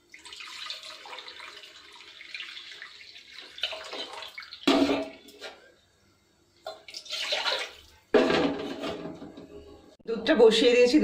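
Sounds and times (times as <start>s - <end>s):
liquid pouring through strainer: 0.0s - 5.2s
metal pan clanking down: 8.2s - 9.5s.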